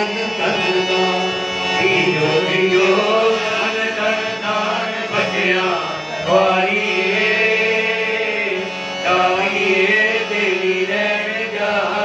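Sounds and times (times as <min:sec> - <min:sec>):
devotional song singing: 0:00.0 - 0:12.0
steady drone: 0:00.0 - 0:12.0.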